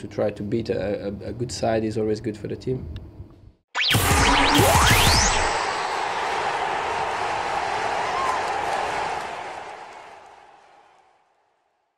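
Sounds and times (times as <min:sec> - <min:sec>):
rising whoosh: 0:03.8 - 0:07.6.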